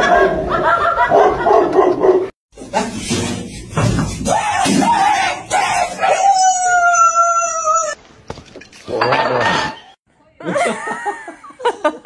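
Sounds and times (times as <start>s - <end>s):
loud wavering cries: 4.2s - 8.0s.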